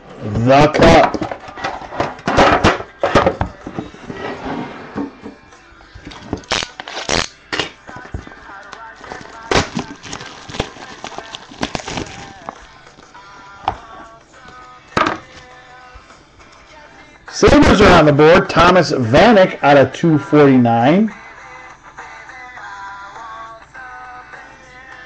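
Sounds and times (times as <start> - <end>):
faint background music: 0.0 - 25.0
cellophane wrap crinkling: 6.1 - 7.4, 8.0 - 13.2.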